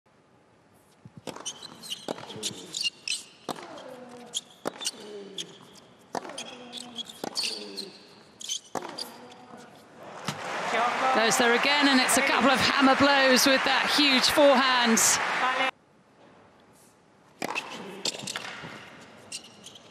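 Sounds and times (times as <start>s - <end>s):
tennis ball bouncing: 1.1s - 2.6s, 3.4s - 5.0s, 5.7s - 7.6s, 8.6s - 9.4s, 17.4s - 18.9s
shoe squeaks on court: 1.2s - 9.8s, 17.4s - 19.9s
racket striking tennis ball: 3.4s - 5.0s, 6.1s - 6.5s, 8.7s - 9.2s, 17.4s - 18.9s.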